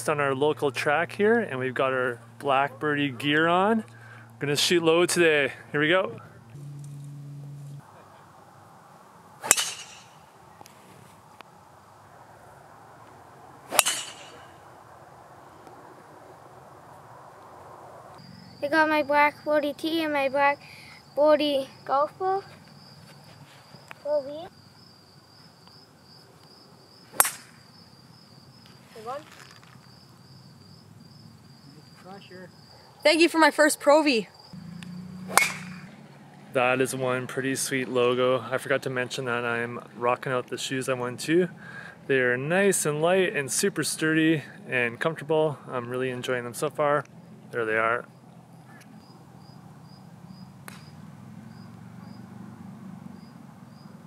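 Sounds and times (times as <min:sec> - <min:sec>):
cricket chirping: 0:06.2 - 0:10.7, 0:11.3 - 0:36.5, 0:47.0 - 0:54.0
golf club striking ball: 0:09.4 - 0:10.2, 0:13.7 - 0:14.6, 0:27.1 - 0:27.7, 0:34.6 - 0:36.2, 0:50.6 - 0:51.2
insects singing: 0:18.0 - 0:36.3, 0:47.1 - 0:52.4.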